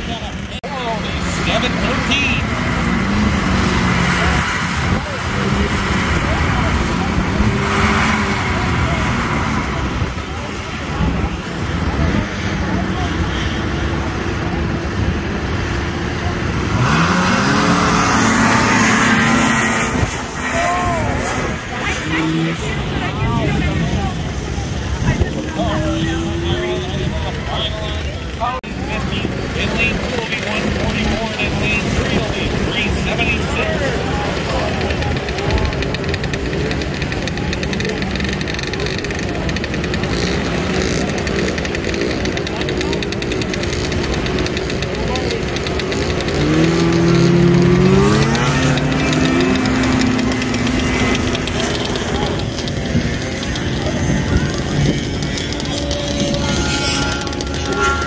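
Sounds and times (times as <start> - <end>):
people chatting: 0.0 - 58.0
snowmobile engines accelerating: 0.0 - 58.0.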